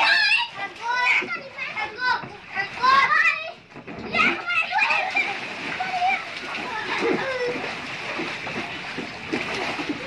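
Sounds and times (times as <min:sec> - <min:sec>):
water splashing and sloshing: 0:00.0 - 0:10.0.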